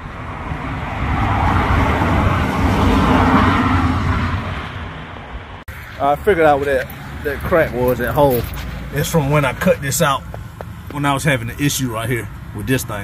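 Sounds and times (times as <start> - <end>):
road vehicle passing by: 0.0 - 13.0.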